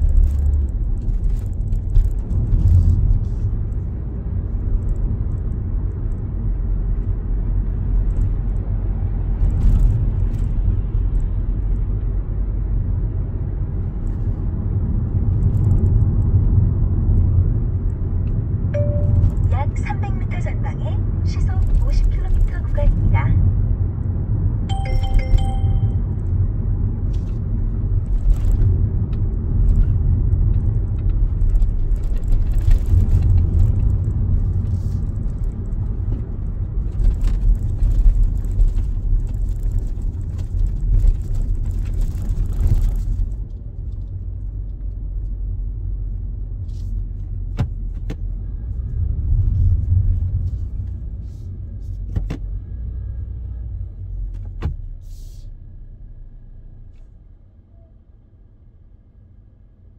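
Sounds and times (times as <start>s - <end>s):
car cabin road and engine rumble: 0.0s - 59.9s.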